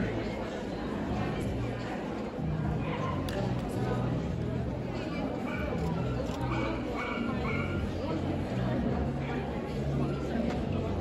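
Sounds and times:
murmur of voices: 0:00.0 - 0:11.0
dog barking: 0:06.5 - 0:07.8.

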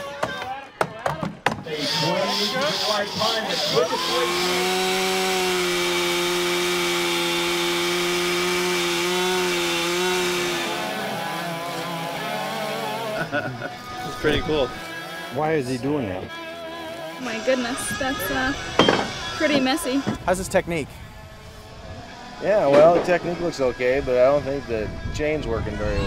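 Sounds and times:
chainsaw cutting through log: 0:01.6 - 0:20.4.

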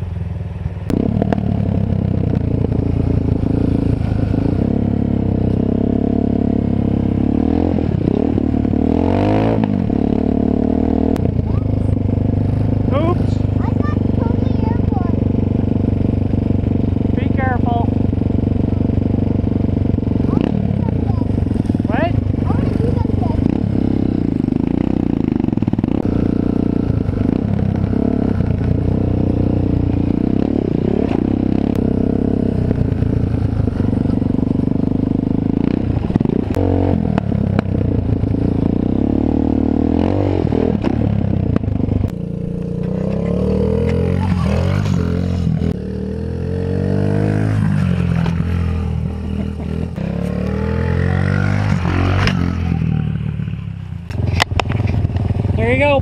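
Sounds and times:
dirt bike engine revving: 0:00.9 - 0:56.0.

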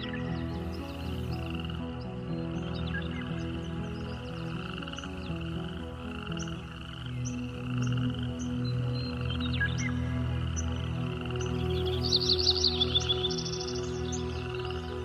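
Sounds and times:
frogs croaking: 0:00.0 - 0:15.0
slow soft music: 0:00.0 - 0:15.0.

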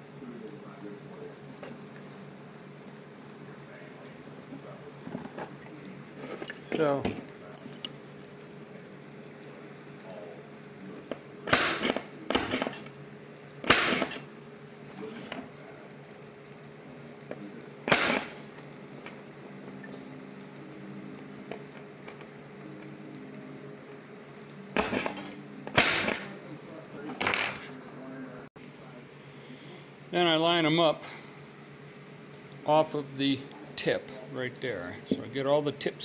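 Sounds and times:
faint steady hum: 0:00.0 - 0:36.0.

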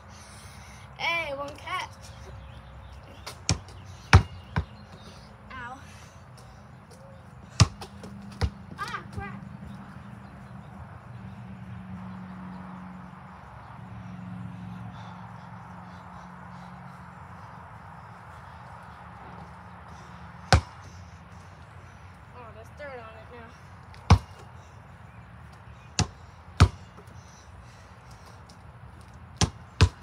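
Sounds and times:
basketball bouncing on hard ground: 0:02.4 - 0:05.7, 0:06.3 - 0:10.8, 0:19.2 - 0:21.5, 0:23.9 - 0:24.6, 0:25.4 - 0:27.2, 0:28.1 - 0:30.0.

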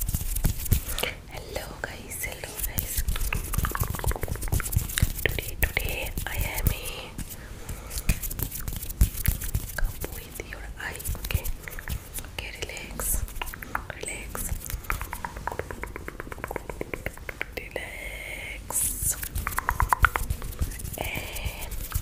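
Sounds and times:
person whispering into microphone: 0:01.0 - 0:04.5, 0:05.2 - 0:08.0, 0:09.6 - 0:22.0.

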